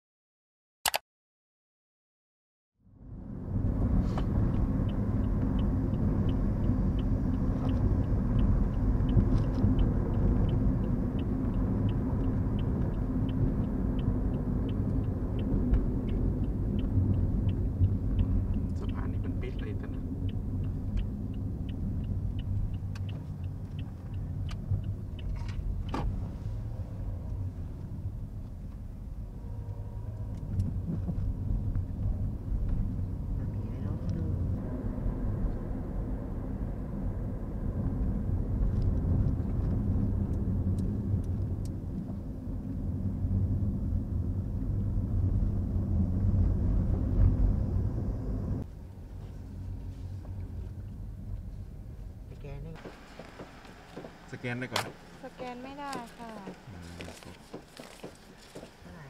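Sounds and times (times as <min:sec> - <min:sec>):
car engine and tyre rumble: 0:02.8 - 0:59.0
light ticks: 0:04.2 - 0:26.1, 0:38.7 - 0:42.2.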